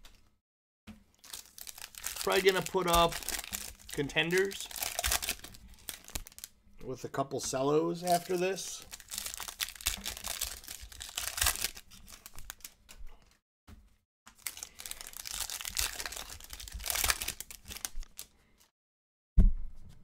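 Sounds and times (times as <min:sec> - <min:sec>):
foil wrapper tearing and crinkling: 0:01.1 - 0:06.5, 0:08.0 - 0:12.8, 0:14.3 - 0:18.7.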